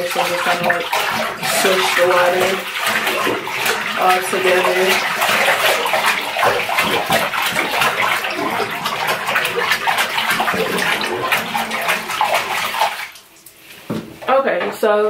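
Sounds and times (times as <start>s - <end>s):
water splashing in bathtub: 0.0s - 15.0s.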